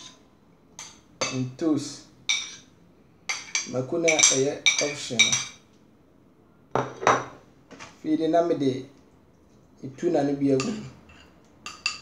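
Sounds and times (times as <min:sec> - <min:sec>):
metal spoon scraping ceramic plate: 0:10.6 - 0:12.0.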